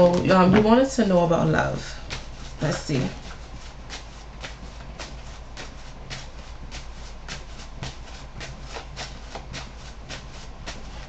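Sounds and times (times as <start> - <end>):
low steady hum: 0.0 - 11.0
cards being shuffled: 2.0 - 11.0.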